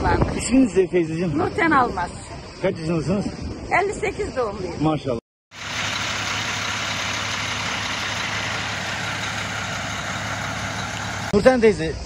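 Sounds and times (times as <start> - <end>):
truck engine idling: 5.5 - 11.4.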